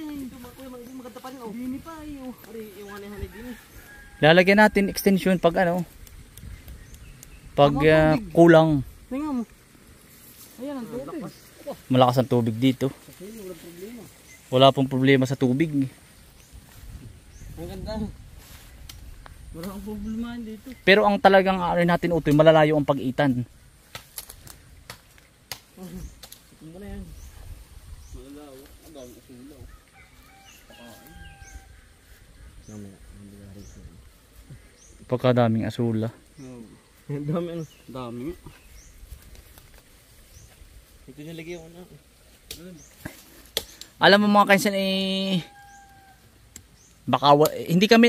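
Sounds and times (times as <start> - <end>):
man talking: 7.6 - 8.9, 10.7 - 16.0, 32.6 - 34.0, 35.1 - 38.6.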